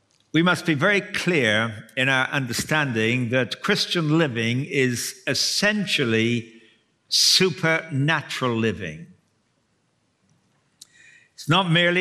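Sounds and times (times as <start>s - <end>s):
man's voice: 0.4s - 6.4s, 7.1s - 9.1s, 11.4s - 12.0s.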